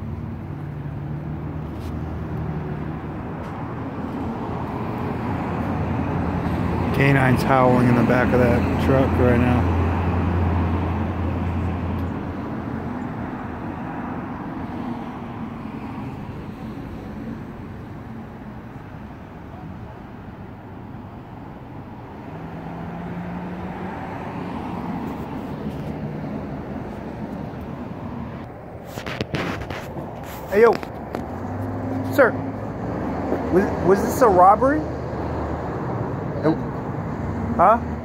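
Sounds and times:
road traffic: 0.0s - 38.0s
vehicle engine noise: 0.0s - 38.0s.

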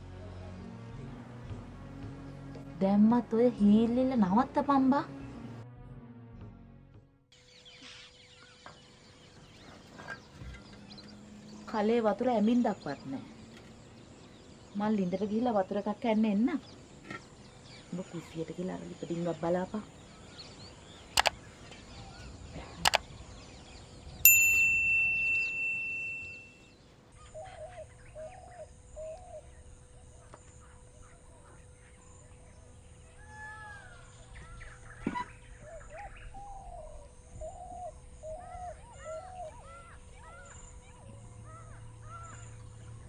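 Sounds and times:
birds chirping: 7.4s - 43.0s
faint steady hum: 7.4s - 43.0s
sharp clicks: 21.1s - 21.4s, 22.8s - 23.1s
bell-like ding: 24.3s - 26.7s.

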